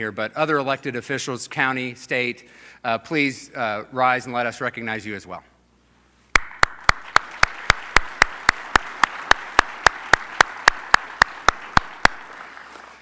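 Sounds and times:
audience applauding: 6.4 - 13.0
single person clapping: 6.4 - 13.0.

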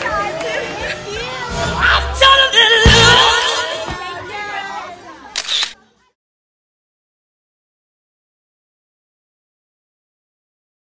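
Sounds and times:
voices chattering: 0.0 - 6.2
camera shutter click: 5.4 - 5.8.

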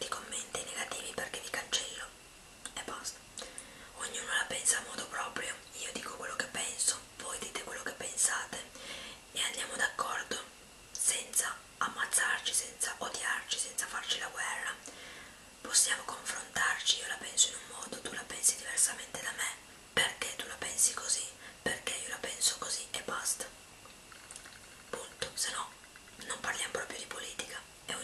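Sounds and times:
woman whispering: 0.0 - 3.2, 4.0 - 8.7, 9.4 - 14.8, 15.6 - 23.5, 24.9 - 28.0.

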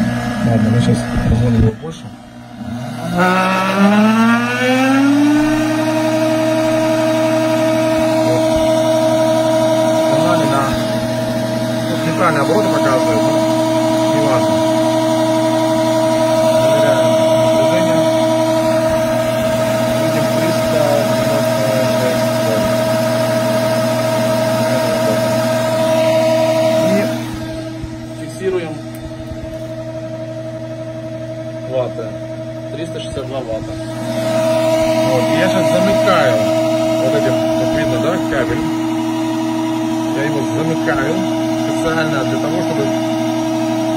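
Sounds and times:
electric motor whining: 0.0 - 43.9.

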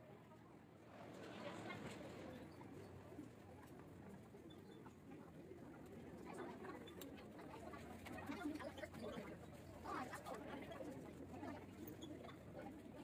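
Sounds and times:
murmur of distant voices: 0.0 - 13.0.

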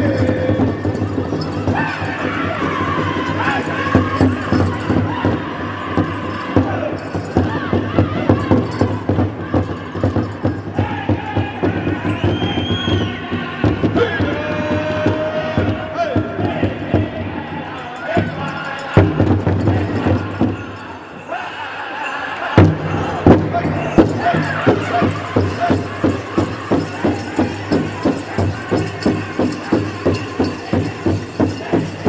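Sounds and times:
fast beat on large drum: 0.0 - 12.2, 22.6 - 32.0
drum group singing: 0.0 - 32.0
high whistled tone: 12.0 - 13.2.

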